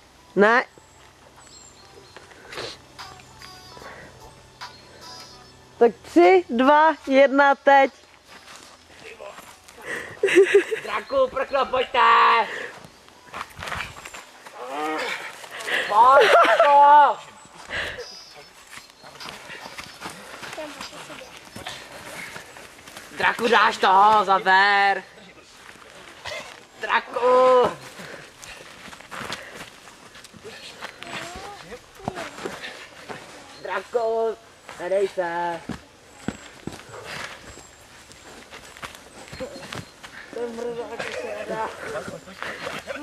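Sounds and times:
feet scuffling on dirt: 8.1 - 10.3, 12.7 - 15.8, 17.2 - 24.4, 27.6 - 34.0, 34.6 - 43.0
voices shouting: 10.9 - 12.8
person shouting encouragement: 11.3 - 12.5, 15.9 - 17.3.

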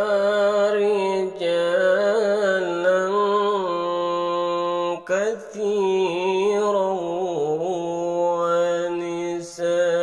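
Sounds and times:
man chanting recitation: 0.0 - 10.0.

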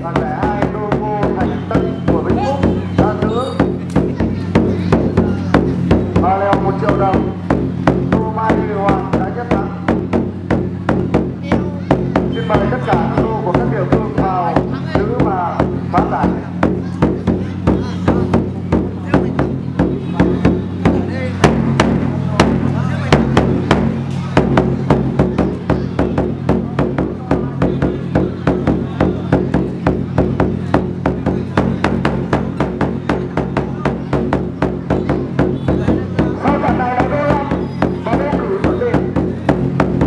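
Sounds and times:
steady drum beats: 0.0 - 40.0.

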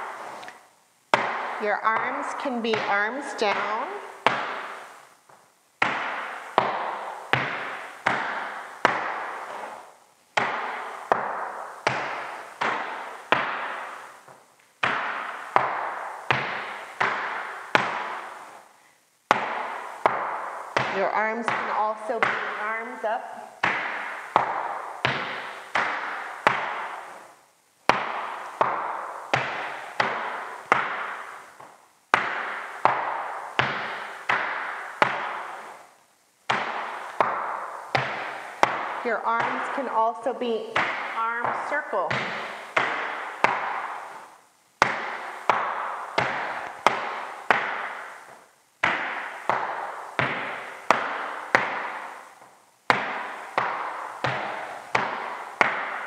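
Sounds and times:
dance shoes striking wooden floor: 0.0 - 18.6, 19.3 - 56.0.

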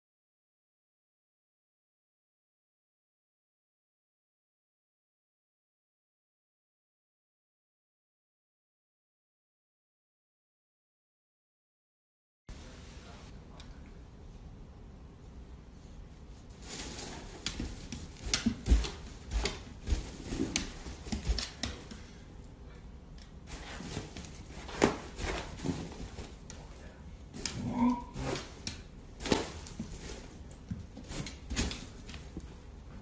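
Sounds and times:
dog claws clicking on hardwood floor: 17.1 - 22.2.

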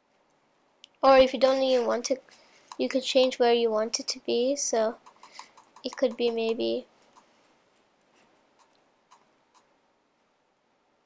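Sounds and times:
faint mouse clicks: 5.0 - 7.3.

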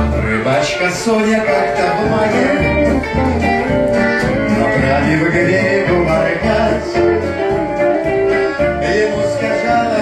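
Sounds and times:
person singing: 0.0 - 3.3, 4.3 - 10.0
guitar: 0.0 - 10.0
steady bass beat: 1.8 - 10.0.

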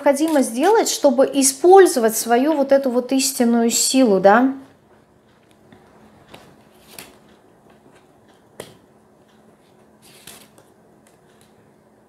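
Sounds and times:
faint card rustles: 6.2 - 8.1, 9.3 - 11.6.

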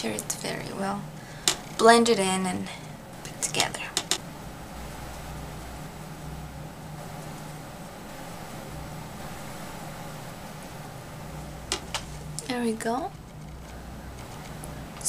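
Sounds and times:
room noise hiss: 0.0 - 15.0
steady low hum: 0.0 - 15.0.

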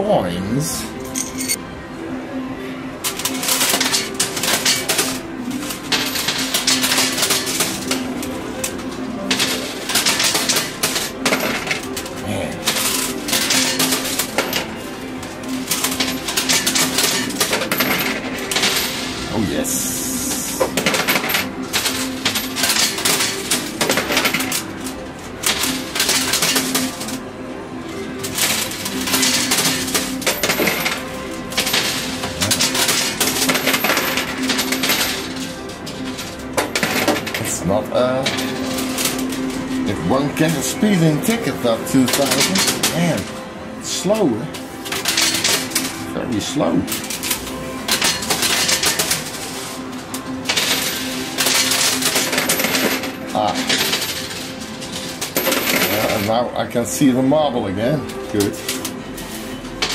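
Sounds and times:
background music: 0.0 - 59.9
coins clinking and clattering: 0.6 - 1.6, 3.0 - 59.9.

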